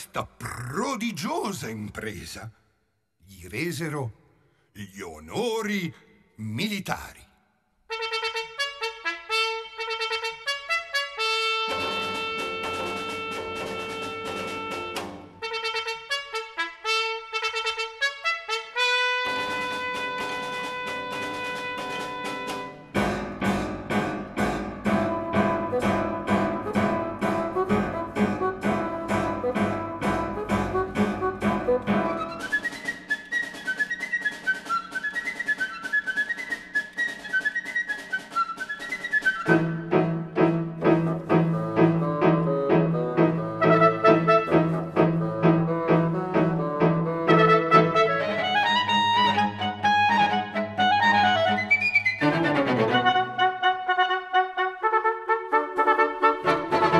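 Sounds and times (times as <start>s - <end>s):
trumpet fanfare: 7.9s - 22.9s, 43.6s - 44.8s, 47.3s - 48.5s, 52.9s - 56.9s.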